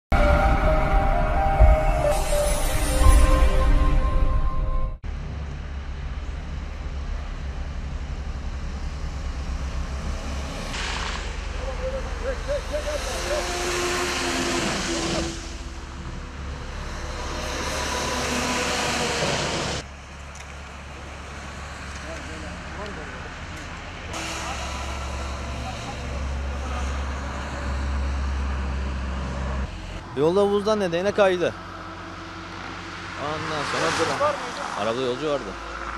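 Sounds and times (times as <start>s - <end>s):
heavy vehicle engines rumbling: 0.1s - 35.9s
traffic passing on wet road: 5.2s - 30.1s, 31.6s - 35.9s.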